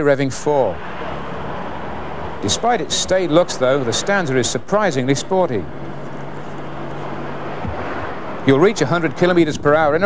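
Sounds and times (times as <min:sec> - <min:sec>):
car engine humming: 0:00.0 - 0:10.0
tyre and road noise: 0:00.0 - 0:10.0.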